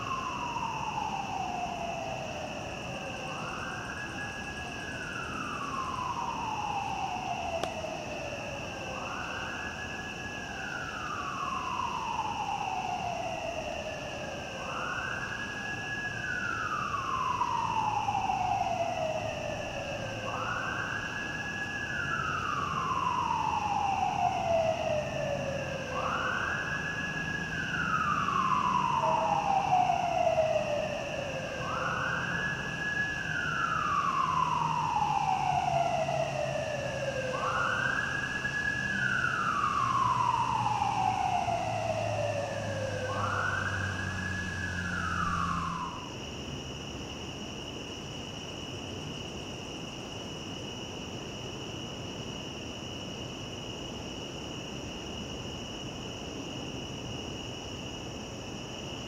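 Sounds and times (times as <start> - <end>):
siren wailing: 16.0 - 46.1
low traffic rumble: 22.5 - 46.7.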